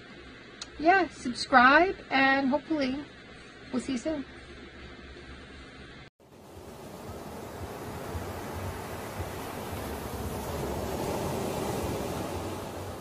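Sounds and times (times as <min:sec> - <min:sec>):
ocean waves breaking: 0:06.2 - 0:13.0.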